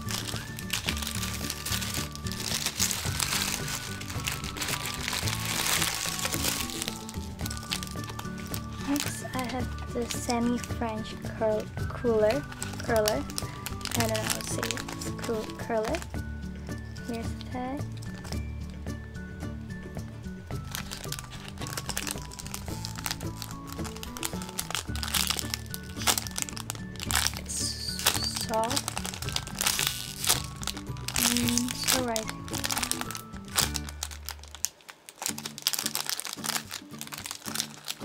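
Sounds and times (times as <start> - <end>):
cellophane bag crinkling: 0.0 - 18.8, 20.5 - 38.0
background music: 0.0 - 38.0.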